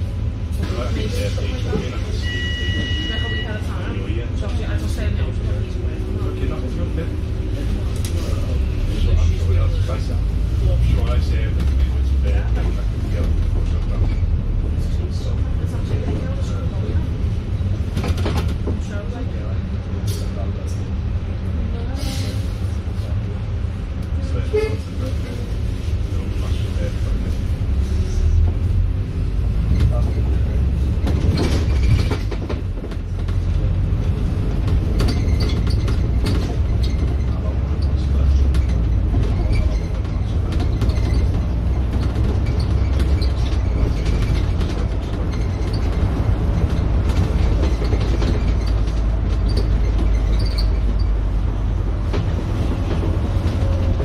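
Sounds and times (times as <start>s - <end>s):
bus body rattles and knocks: 0.0s - 21.4s, 24.9s - 54.0s
bus engine and road rumble: 0.0s - 54.0s.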